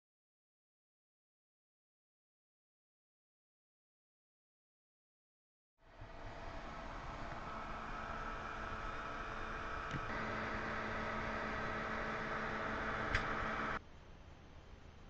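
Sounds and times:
steady machine hum: 5.8 - 13.8
faint steady tones: 5.8 - 15.0
wash of noise: 5.9 - 13.8
sharp click: 13.1 - 13.4.

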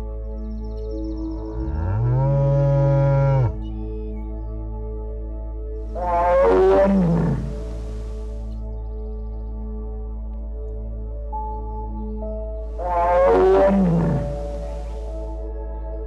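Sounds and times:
soft ambient music drone: 0.0 - 16.0
cow mooing: 1.6 - 3.6, 6.0 - 8.2, 12.8 - 15.1
high animal call sliding down: 6.0 - 8.2, 12.8 - 15.1.

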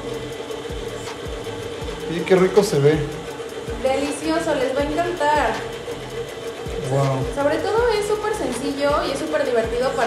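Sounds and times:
stand mixer motor humming: 0.0 - 10.0.

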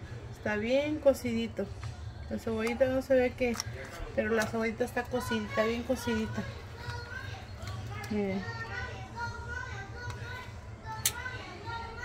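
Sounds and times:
children and adults talking: 0.0 - 12.0.

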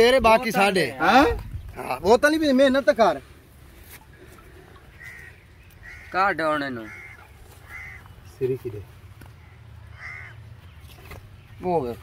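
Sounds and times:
faint crow caws: 4.1 - 10.8.

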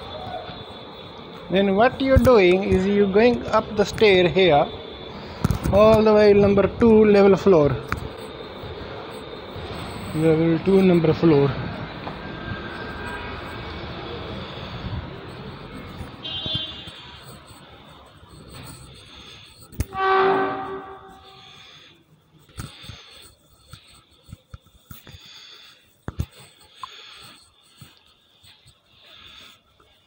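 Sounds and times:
loud pitched ringing tone: 0.0 - 21.9
steady background noise: 0.0 - 30.0.

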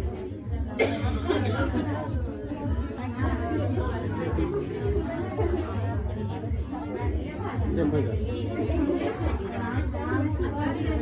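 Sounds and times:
many people chattering: 0.0 - 11.0.

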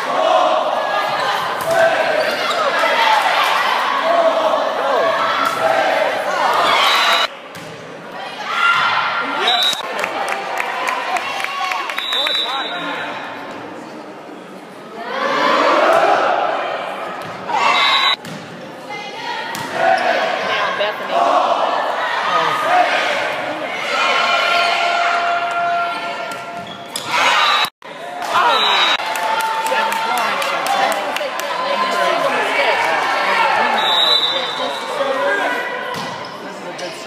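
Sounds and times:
voices echoing in gymnasium: 0.0 - 37.0
murmur of voices: 27.9 - 37.0.

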